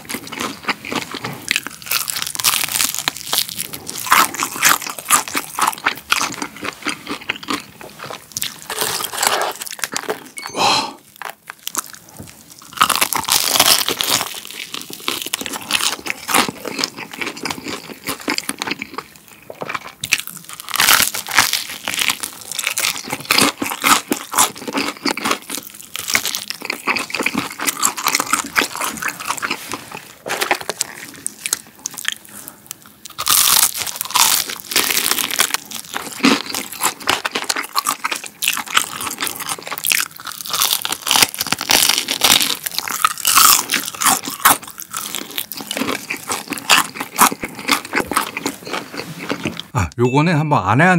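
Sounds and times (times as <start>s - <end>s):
chewing crispy fried chicken: 0.0s - 10.4s, 11.0s - 49.9s
crackling crunches: 0.0s - 10.4s, 11.0s - 49.7s.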